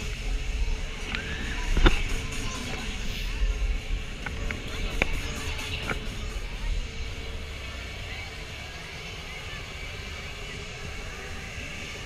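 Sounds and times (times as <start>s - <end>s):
ride machinery: 0.0s - 12.0s
voices: 0.0s - 12.0s.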